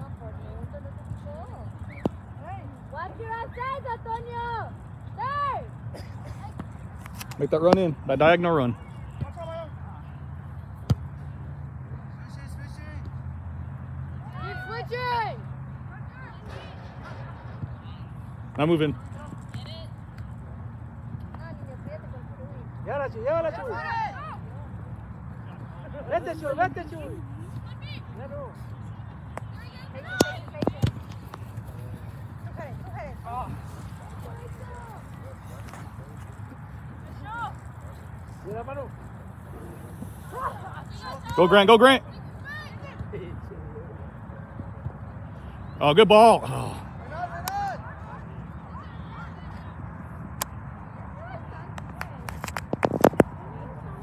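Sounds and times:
distant shouting players: 0:00.1 - 0:52.3.

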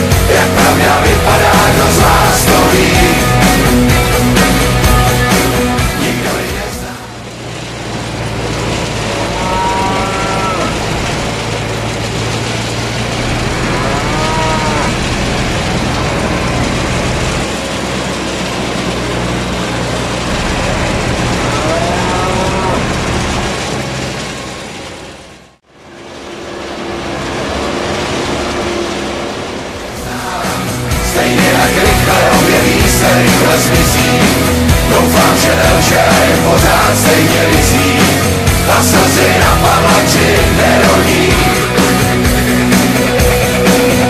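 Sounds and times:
music: 0:00.0 - 0:07.1, 0:30.0 - 0:44.0
low mechanical drone: 0:00.0 - 0:44.0
cows mooing: 0:09.1 - 0:11.4, 0:13.2 - 0:17.2, 0:20.3 - 0:23.4.

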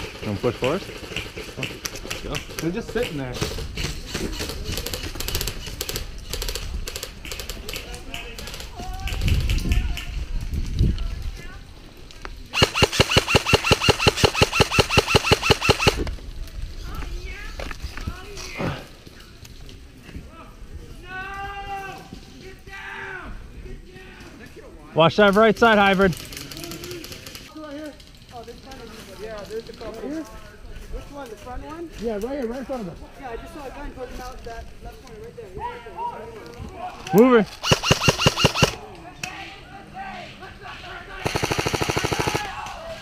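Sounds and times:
airsoft rifle full-auto burst: 0:12.5 - 0:16.0, 0:37.5 - 0:38.8, 0:41.2 - 0:42.5.

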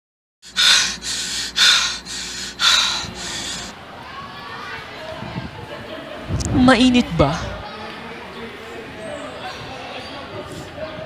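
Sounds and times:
man panting hard: 0:00.4 - 0:03.8.

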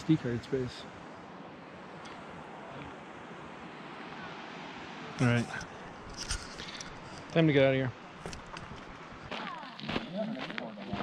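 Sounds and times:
footsteps on gravel and snow: 0:08.2 - 0:11.0.

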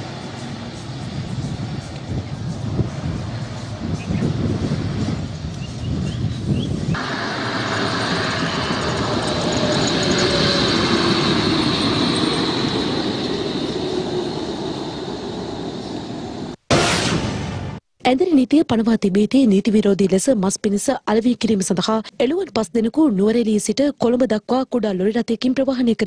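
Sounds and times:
bus driving along highway: 0:00.0 - 0:16.7.

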